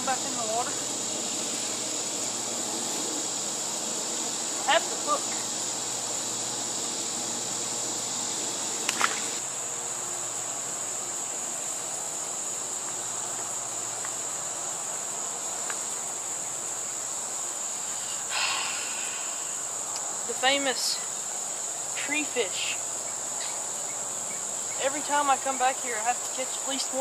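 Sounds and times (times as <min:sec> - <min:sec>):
insects chirring: 0:00.0 - 0:27.0.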